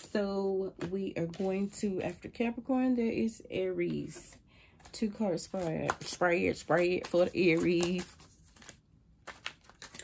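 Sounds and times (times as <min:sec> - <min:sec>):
cards being shuffled: 0:00.7 - 0:02.2, 0:04.1 - 0:10.0.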